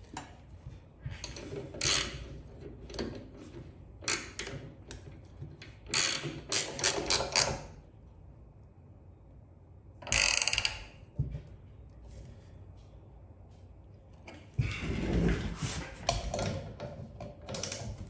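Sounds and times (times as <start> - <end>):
ratcheting wrench clicking: 1.2 - 2.2, 4.0 - 5.0, 5.9 - 7.7, 10.0 - 11.0.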